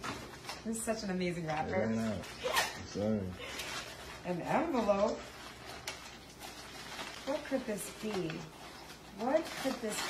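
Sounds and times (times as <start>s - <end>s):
paper envelope crackling: 3.4s - 10.0s.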